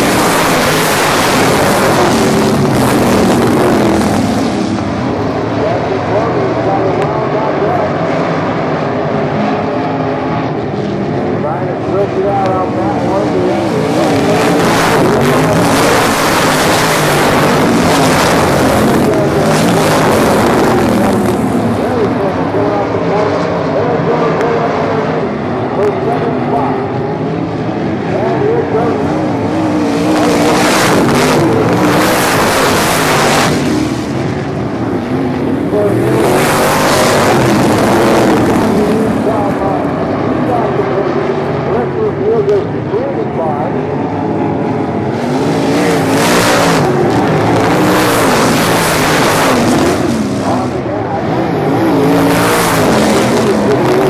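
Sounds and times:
race car engines running: 0.0 - 54.0.

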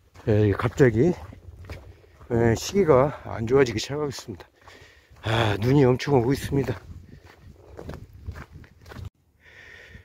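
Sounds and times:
footsteps in snow: 0.0 - 9.1.

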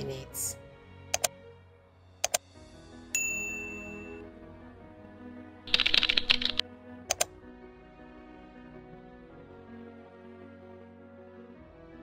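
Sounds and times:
soft background music: 0.0 - 12.0
keyboard typing: 2.2 - 2.4, 5.7 - 7.3
sharp clicks: 2.2 - 2.5, 5.7 - 7.3.

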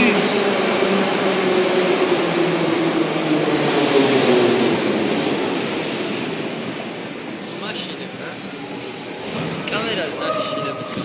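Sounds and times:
metro train rumbling: 0.0 - 11.0.

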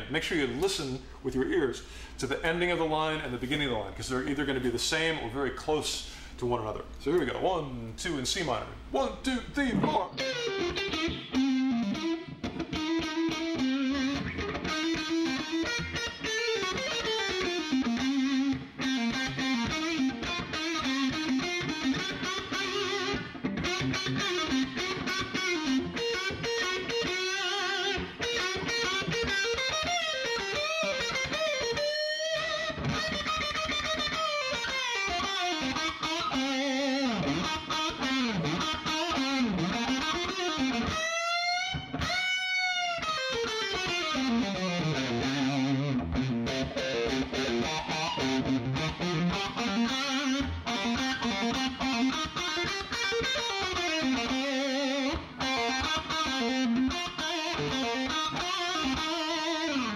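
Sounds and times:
solo electric guitar lead: 9.6 - 59.9.

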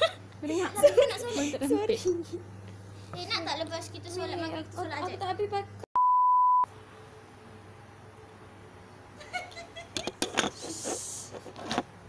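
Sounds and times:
hiss: 10.6 - 11.4.

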